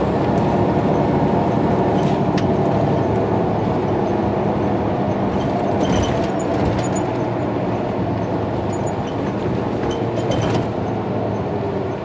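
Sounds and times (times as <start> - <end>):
bus engine running: 0.0 - 12.0
road and tyre noise: 0.0 - 12.0.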